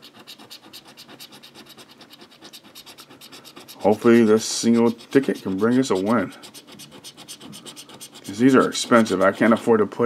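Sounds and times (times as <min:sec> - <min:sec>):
scratching scratch-off ticket: 0:00.0 - 0:09.9.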